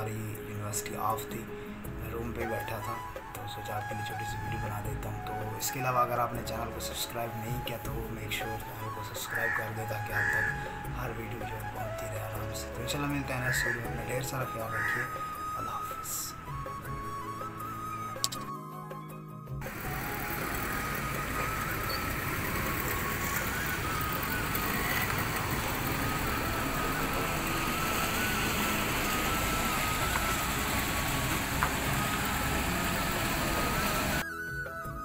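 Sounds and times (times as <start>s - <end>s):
faint background music: 0.0s - 35.0s.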